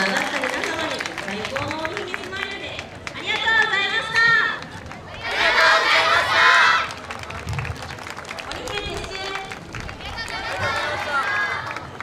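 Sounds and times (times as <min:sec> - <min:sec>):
people talking: 0:00.0 - 0:05.7, 0:08.5 - 0:11.6.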